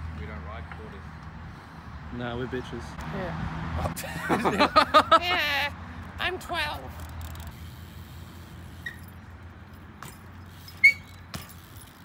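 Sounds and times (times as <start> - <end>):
bike clinking on concrete: 6.4 - 12.0.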